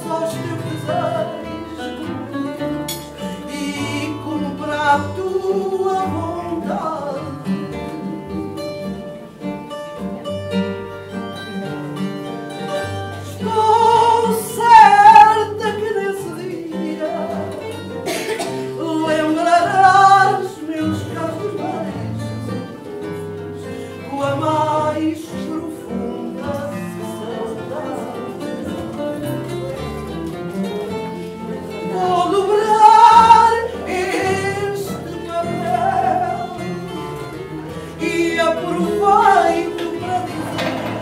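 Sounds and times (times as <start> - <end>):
woman singing with vibrato: 0.0 - 8.9, 12.9 - 22.8, 24.0 - 28.4, 31.8 - 41.0
plucked guitar accompaniment: 0.0 - 41.0.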